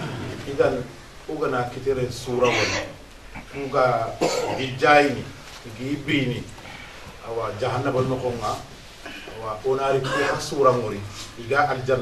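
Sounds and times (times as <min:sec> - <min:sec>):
man clearing his throat: 0:04.2 - 0:04.7, 0:10.0 - 0:10.5
man coughing: 0:04.2 - 0:04.7, 0:10.0 - 0:10.5.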